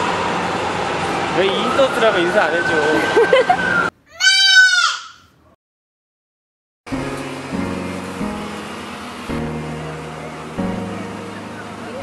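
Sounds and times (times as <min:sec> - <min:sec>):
high bleat-like call: 0:04.1 - 0:05.3.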